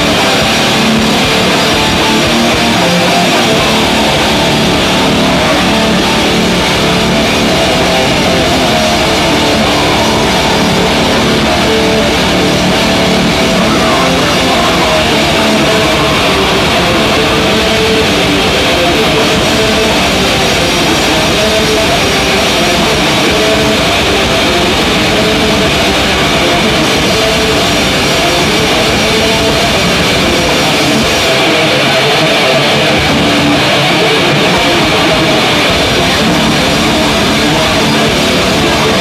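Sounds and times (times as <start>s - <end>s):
distorted electric guitars: 0.0s - 39.0s
drum kit: 0.0s - 39.0s.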